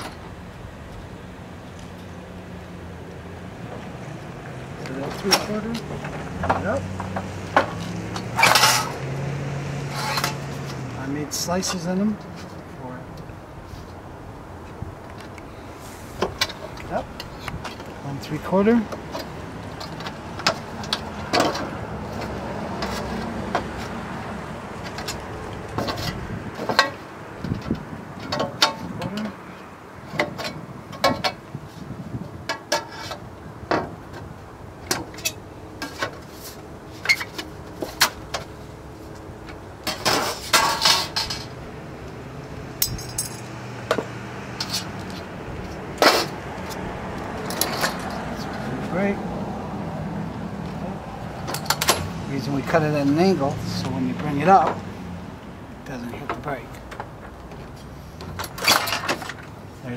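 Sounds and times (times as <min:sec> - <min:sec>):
metal sheet clanking and rattling: 0:05.1 - 0:09.0, 0:39.8 - 0:41.6.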